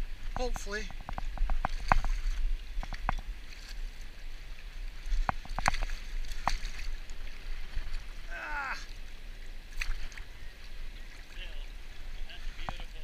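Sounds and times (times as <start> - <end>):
water sloshing and splashing: 0.0 - 13.0.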